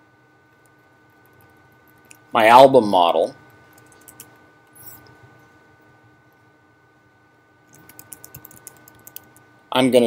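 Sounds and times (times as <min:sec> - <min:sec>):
typing on computer keyboard: 0:07.7 - 0:09.4.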